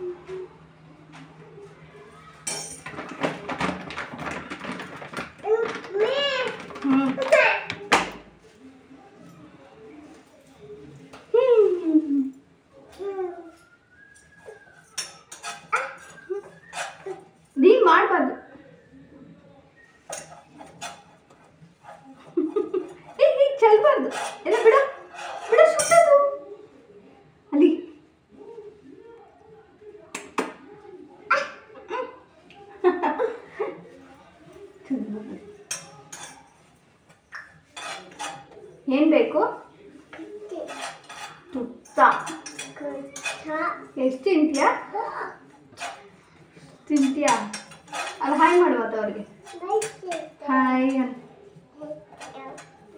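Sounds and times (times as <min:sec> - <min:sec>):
steel pot and utensils clinking: 0:02.4 - 0:03.6, 0:14.0 - 0:17.4, 0:20.0 - 0:23.3, 0:24.0 - 0:26.1, 0:35.4 - 0:38.8, 0:40.3 - 0:43.6, 0:46.8 - 0:50.3.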